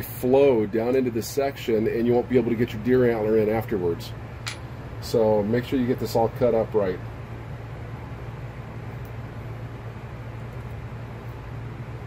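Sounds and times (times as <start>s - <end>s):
machine hum with hiss: 0.0s - 12.0s.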